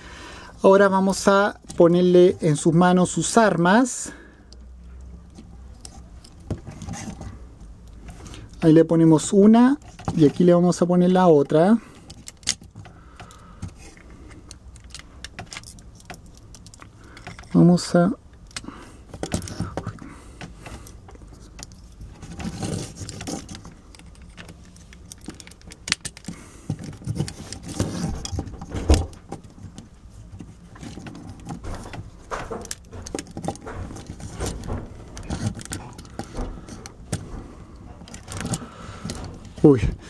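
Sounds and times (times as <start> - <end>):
plastic toy parts clicking: 12.0 - 17.6, 18.4 - 37.2.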